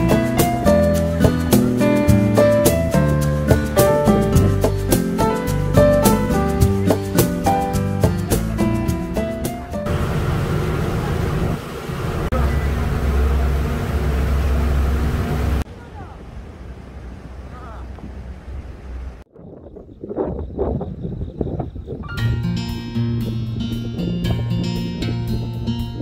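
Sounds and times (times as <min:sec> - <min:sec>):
people talking: 0:00.1 - 0:02.4, 0:09.4 - 0:11.6, 0:12.3 - 0:13.0, 0:15.6 - 0:16.5, 0:17.4 - 0:18.1
ferry engine drone: 0:09.3 - 0:19.2
wind buffeting microphone: 0:15.1 - 0:26.0.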